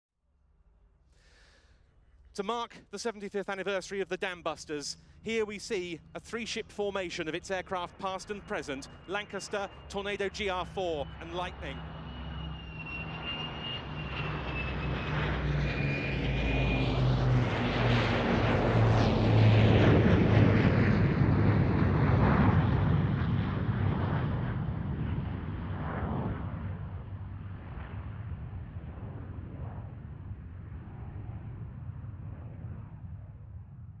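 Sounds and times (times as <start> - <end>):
jet engines roaring: 2.4 - 33.8
piston engines droning: 4.9 - 19.3
high whine sliding downward: 5.4 - 17.3.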